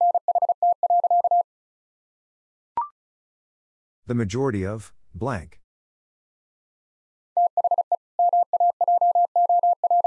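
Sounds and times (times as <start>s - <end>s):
morse code tone beeping: 0.0s - 1.4s, 7.4s - 10.0s.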